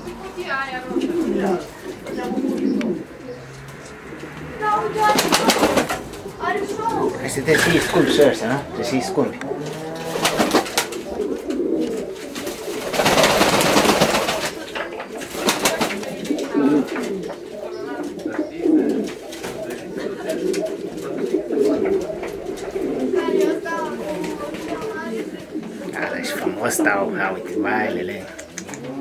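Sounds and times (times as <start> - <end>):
pigeons cooing: 0.0 - 29.0
birds clicking on perches: 0.9 - 4.5, 28.2 - 29.0
wing flapping: 4.9 - 8.2, 9.6 - 17.3, 18.0 - 26.0.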